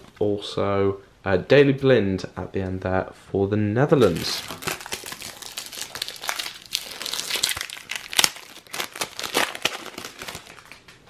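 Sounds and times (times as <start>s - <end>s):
foil wrapper crinkling: 4.0s - 11.0s.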